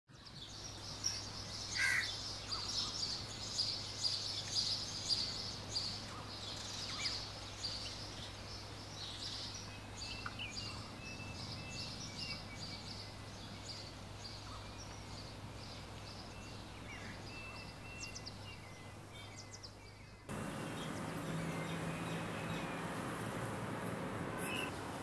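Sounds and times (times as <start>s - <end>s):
small birds chirping: 0.1s - 25.0s
low hum: 20.3s - 25.0s.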